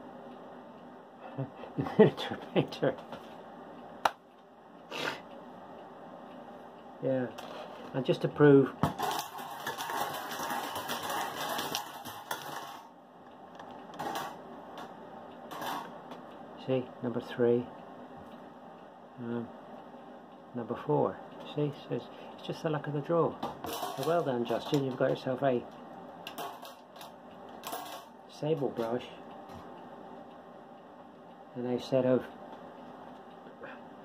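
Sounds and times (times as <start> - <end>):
balls rattling in bingo cage: 8.8 - 12.9, 23.6 - 25.2.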